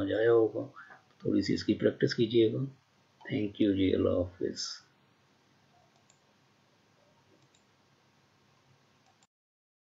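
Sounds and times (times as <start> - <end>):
faint clicks: 5.8 - 6.3, 7.3 - 7.7, 9.0 - 9.3.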